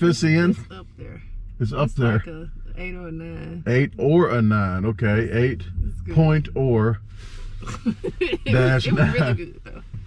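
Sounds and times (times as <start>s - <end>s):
man and woman talking: 0.0s - 0.8s, 1.6s - 7.0s, 7.6s - 9.6s.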